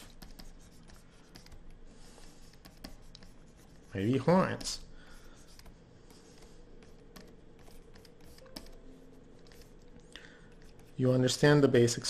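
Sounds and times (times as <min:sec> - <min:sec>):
stylus tapping and scratching screen: 0:00.0 - 0:11.2.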